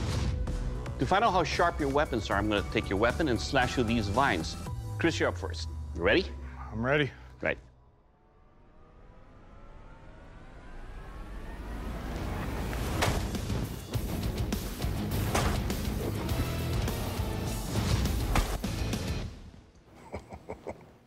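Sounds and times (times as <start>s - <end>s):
dramatic soundtrack music: 0.0s - 19.7s.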